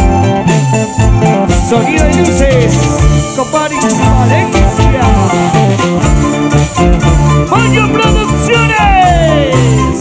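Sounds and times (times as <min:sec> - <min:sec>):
plucked strings: 0:00.0 - 0:10.0
sliding higher notes: 0:00.0 - 0:10.0
steady bass line: 0:00.0 - 0:10.0.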